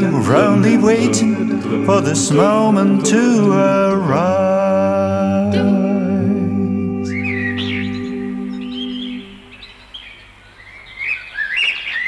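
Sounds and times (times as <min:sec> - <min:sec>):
a cappella vocal group chord: 0:00.0 - 0:09.5
warbling whistled phrases: 0:07.0 - 0:09.6
bird chirps: 0:07.1 - 0:12.0.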